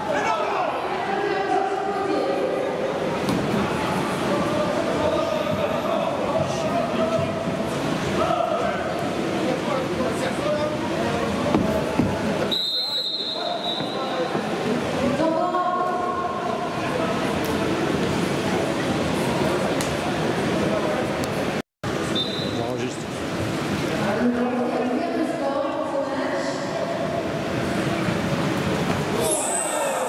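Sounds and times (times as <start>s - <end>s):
referee's whistle blasts: 12.5s - 14.0s, 22.1s - 22.6s.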